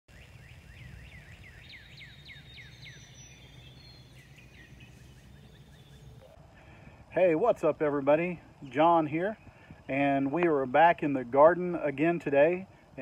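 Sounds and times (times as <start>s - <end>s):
songbird whistling descending notes: 0.1s - 6.4s
low outdoor rumble: 0.1s - 13.0s.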